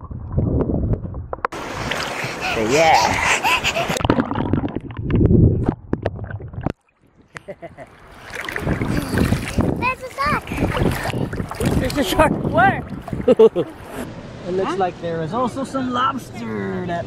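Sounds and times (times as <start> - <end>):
muffled water splashing: 0.0 - 14.5
child laughing: 2.3 - 4.0, 13.3 - 14.0.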